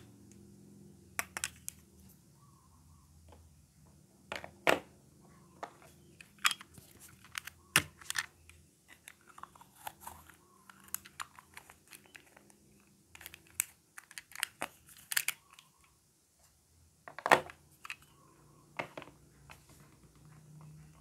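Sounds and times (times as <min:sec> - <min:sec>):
plastic toy pieces clicking: 0:13.1 - 0:15.7.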